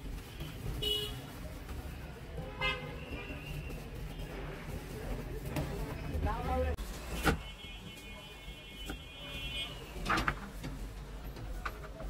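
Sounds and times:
street traffic rumble: 0.0s - 12.0s
vehicle horn toot: 0.4s - 1.2s, 2.5s - 3.4s.

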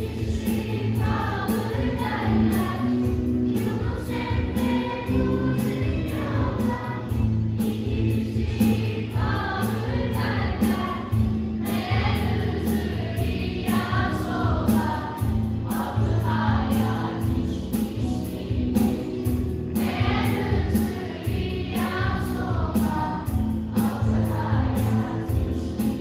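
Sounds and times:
choir singing in unison: 0.0s - 19.0s, 19.7s - 26.0s
live band with bass line: 0.0s - 26.0s.

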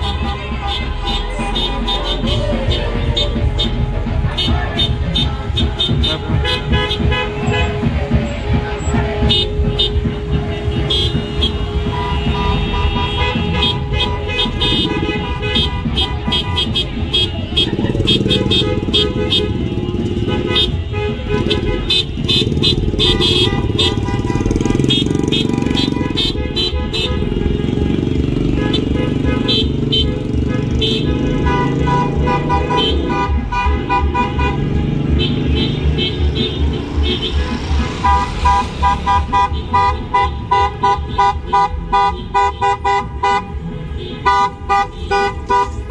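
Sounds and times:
music with bass beat: 0.0s - 29.8s, 30.5s - 45.9s
car horns honking: 0.0s - 45.9s
cars passing: 0.0s - 45.9s.

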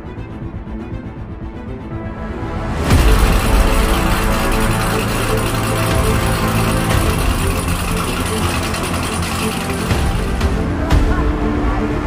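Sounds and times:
music playing: 0.0s - 12.0s
car engine running: 2.9s - 10.6s.

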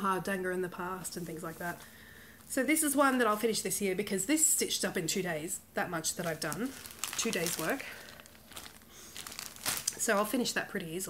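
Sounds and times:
plastic crinkling: 6.0s - 10.6s.

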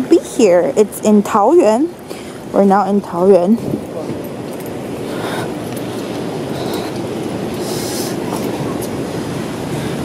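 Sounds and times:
steady rain: 0.0s - 10.0s.

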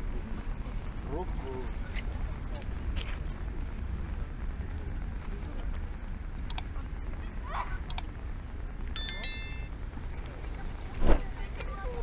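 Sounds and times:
bicycle bell ringing: 9.0s - 9.7s.

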